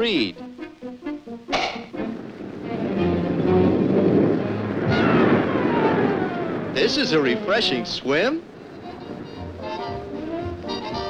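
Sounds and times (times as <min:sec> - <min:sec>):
orchestral notes: 0:00.0 - 0:11.0
sharp orchestral hit: 0:01.5 - 0:03.9
roar of breaking wave: 0:02.4 - 0:08.1.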